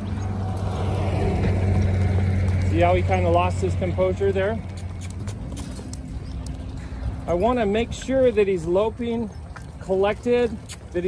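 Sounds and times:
low rumble: 0.0s - 8.3s
hooves thudding on soft dirt: 0.0s - 11.0s.

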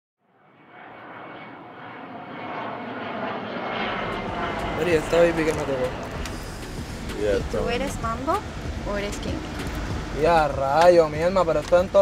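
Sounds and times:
steady rushing noise: 0.5s - 12.0s.

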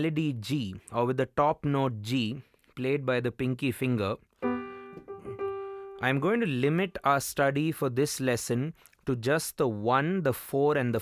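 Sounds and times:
digital piano chords: 4.4s - 6.8s.

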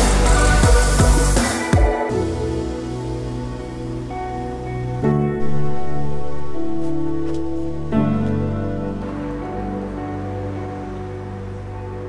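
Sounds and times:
soft held music chords: 0.0s - 12.0s.

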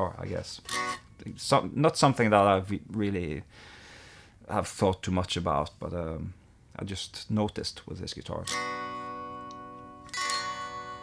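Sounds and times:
electric guitar chords ringing: 0.7s - 1.1s, 8.5s - 11.0s.

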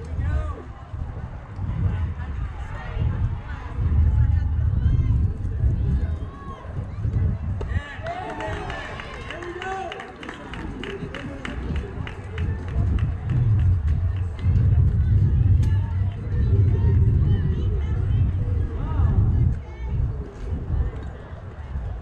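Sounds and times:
spectators shouting and cheering: 0.0s - 22.0s
wind rumble on microphone: 0.0s - 22.0s
scattered clapping: 7.6s - 17.3s.

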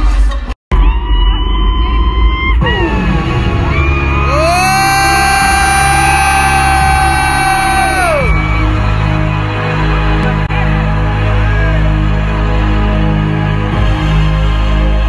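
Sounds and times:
heavy bass: 0.0s - 15.0s.

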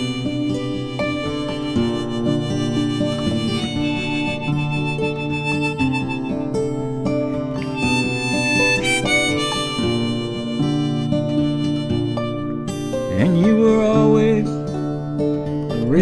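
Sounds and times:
harmonica melody: 0.0s - 14.5s
acoustic guitar: 0.0s - 16.0s.

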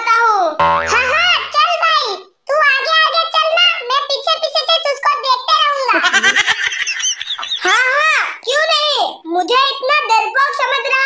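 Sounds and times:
high-pitched cartoon child's voice: 0.0s - 5.9s, 7.6s - 11.0s.

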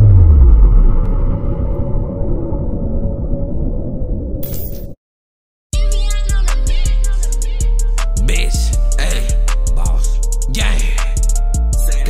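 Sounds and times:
deep boom sweeping down: 0.0s - 4.4s.

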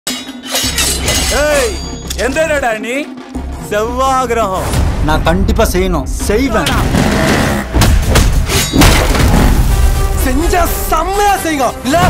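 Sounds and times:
glass shattering: 0.1s - 2.1s, 8.5s - 9.5s.

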